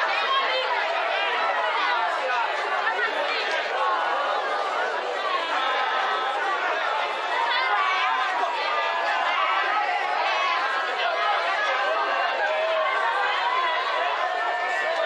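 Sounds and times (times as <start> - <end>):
many voices talking and calling: 0.0 - 15.0.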